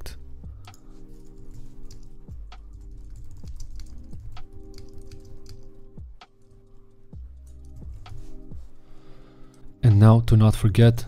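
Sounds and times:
soft background music: 0:00.0 - 0:11.0
computer keyboard typing: 0:00.6 - 0:08.3.

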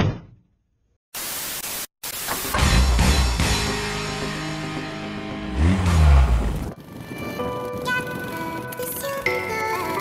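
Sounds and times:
static hiss burst: 0:01.2 - 0:02.6.

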